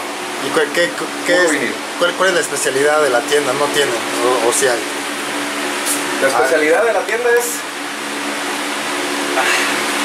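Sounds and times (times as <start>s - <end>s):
air conditioner humming: 0.0s - 10.0s.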